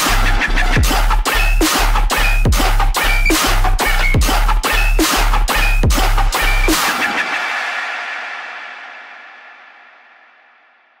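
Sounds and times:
dubstep track: 0.0 - 9.0.

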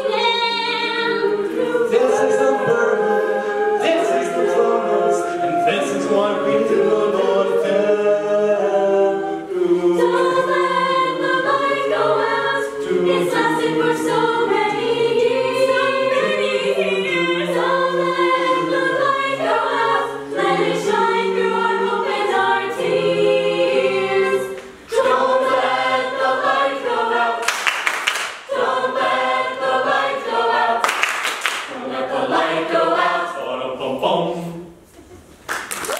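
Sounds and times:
a cappella group singing: 0.0 - 34.8.

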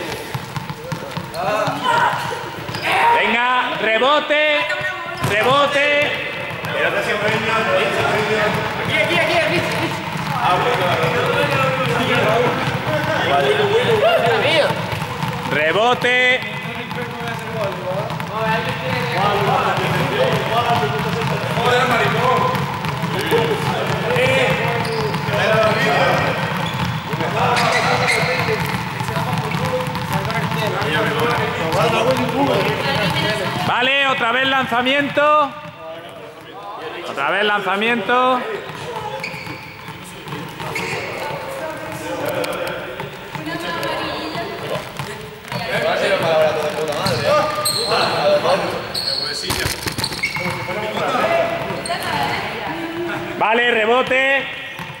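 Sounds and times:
chatter of many voices: 0.0 - 55.0
juggling balls bouncing on floor: 4.8 - 34.0, 38.2 - 47.8, 49.4 - 52.3.

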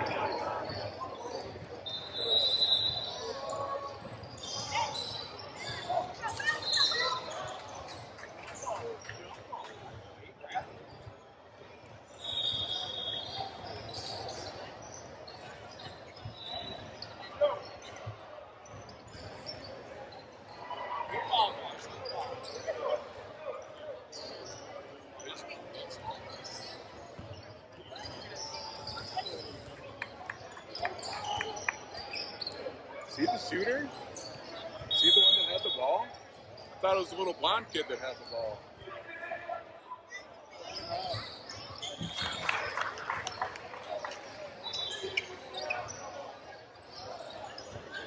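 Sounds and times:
people talking in hall: 0.0 - 48.0
referee whistle: 1.8 - 3.4, 12.2 - 13.6, 34.8 - 36.1.

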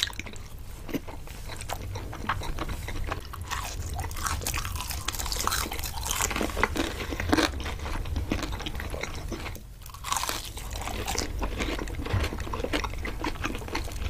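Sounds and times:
crunchy chewing: 0.0 - 14.0
low steady hum: 0.0 - 14.0.

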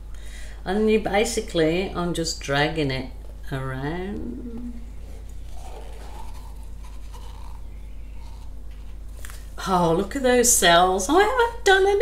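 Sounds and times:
steady low hum: 0.0 - 12.0
paint cup scraping canvas: 5.0 - 9.3.

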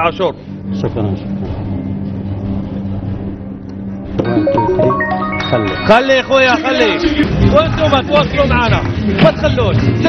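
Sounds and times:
low droning music: 0.0 - 10.0.

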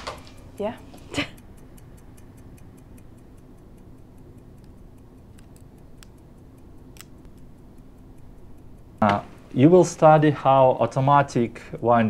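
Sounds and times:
faint low hum: 0.0 - 12.0
mechanical watch ticking: 0.0 - 12.0.

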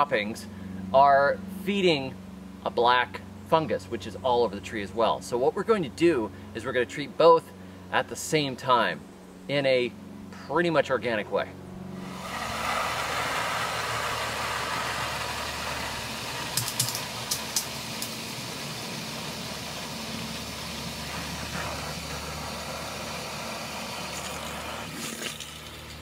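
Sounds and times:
water running from hose: 12.0 - 26.0
sharp clicks: 16.6 - 18.2.

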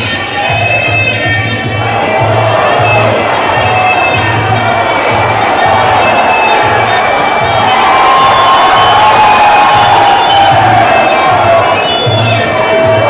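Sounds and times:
crowd cheering: 0.0 - 13.0
steady drum beat: 0.0 - 13.0.

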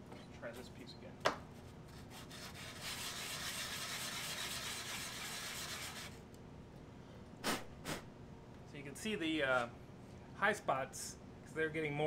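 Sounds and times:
resin part scraping on sandpaper: 2.0 - 6.2.

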